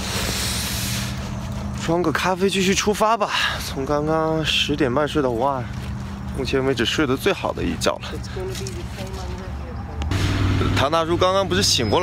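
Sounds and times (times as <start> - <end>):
rushing hiss: 0.0 - 1.2.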